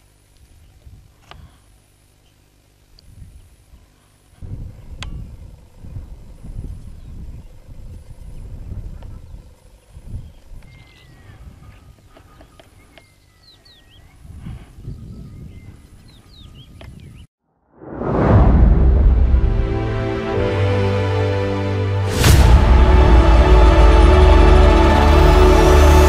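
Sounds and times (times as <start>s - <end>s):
wind rumbling on microphone: 3.0s - 3.7s, 4.4s - 12.3s, 14.0s - 19.8s
faint bird chirps: 6.9s - 17.3s.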